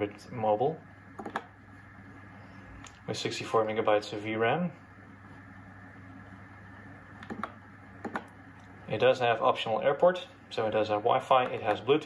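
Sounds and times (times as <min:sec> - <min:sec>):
low steady hum: 0:00.0 - 0:12.0
computer mouse clicks: 0:01.2 - 0:01.5, 0:07.2 - 0:08.3.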